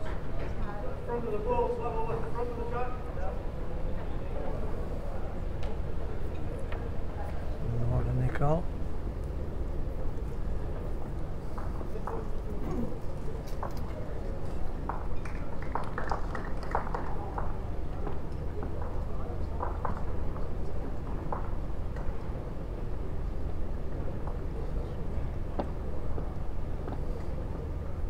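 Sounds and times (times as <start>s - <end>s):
low hum of hall: 0.0s - 28.0s.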